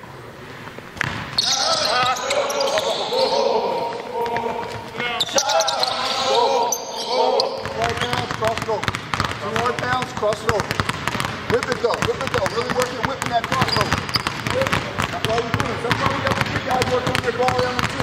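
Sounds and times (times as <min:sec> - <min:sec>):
basketballs bouncing on hardwood: 0:00.9 - 0:03.0, 0:07.4 - 0:18.0
indistinct voices: 0:01.4 - 0:08.3.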